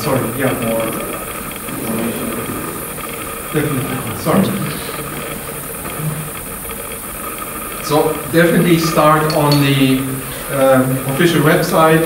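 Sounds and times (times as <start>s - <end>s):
man speaking: 3.5s - 5.0s.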